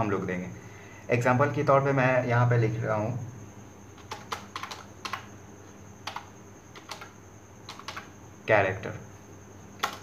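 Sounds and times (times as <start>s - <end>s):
computer keyboard keystrokes: 4.0s - 5.3s, 6.0s - 8.1s, 9.8s - 10.0s.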